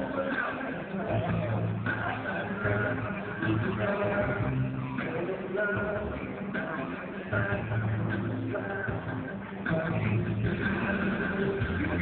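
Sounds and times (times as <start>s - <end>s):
backing track with bass: 0.0s - 12.0s
man singing into microphone: 0.0s - 12.0s.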